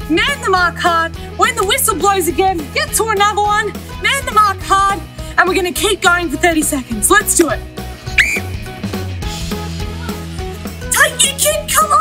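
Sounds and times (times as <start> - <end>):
background music with bass line: 0.0 - 12.0
whistle blast gliding up: 8.2 - 8.5.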